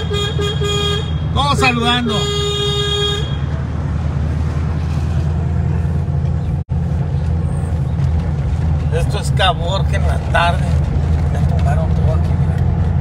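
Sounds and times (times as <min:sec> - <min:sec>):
car horn: 0:00.0 - 0:03.6
car engine rumble: 0:00.0 - 0:13.0
road noise: 0:00.0 - 0:13.0.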